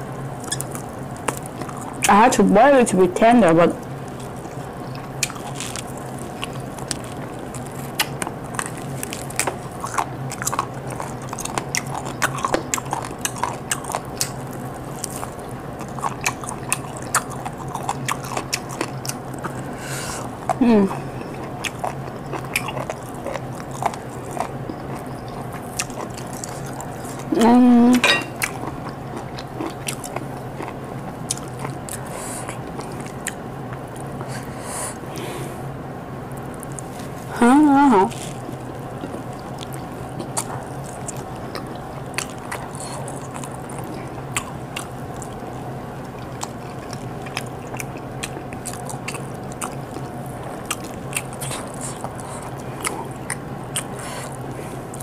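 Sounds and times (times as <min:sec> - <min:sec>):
person biting and chewing: 0:00.4 - 0:02.1, 0:04.1 - 0:27.3, 0:28.0 - 0:35.2, 0:38.1 - 0:55.0
person humming mm: 0:20.6 - 0:21.1.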